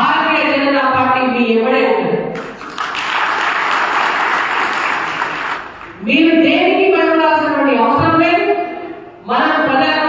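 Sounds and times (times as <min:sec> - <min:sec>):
audience applauding: 0:02.4 - 0:06.0
person giving a speech: 0:05.9 - 0:10.0.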